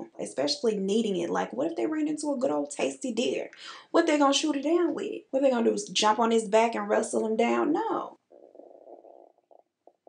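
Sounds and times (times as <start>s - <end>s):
stomach gurgling: 7.5s - 10.0s.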